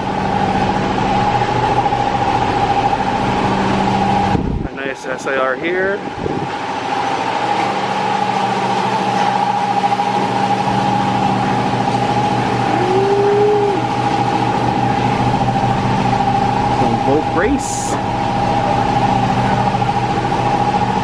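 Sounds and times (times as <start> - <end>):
high-pitched whine: 12.4 - 20.1.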